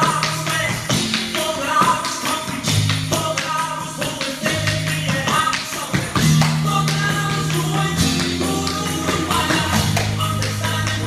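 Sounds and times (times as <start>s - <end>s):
music with bass and percussive beat: 0.0s - 11.0s.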